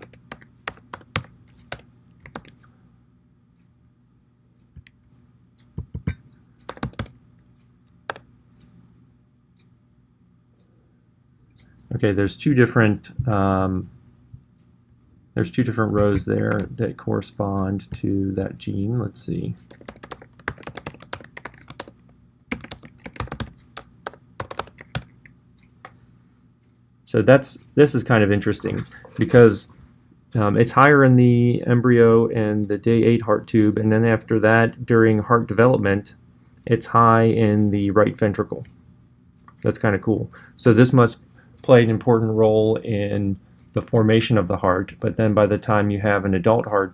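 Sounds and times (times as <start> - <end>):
typing on computer keyboard: 0.0 - 2.6, 5.8 - 7.2, 16.0 - 16.8, 19.6 - 25.2.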